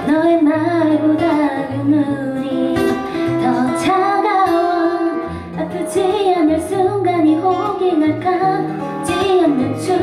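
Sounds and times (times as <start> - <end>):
guitar: 0.0 - 10.0
woman singing: 0.0 - 10.0.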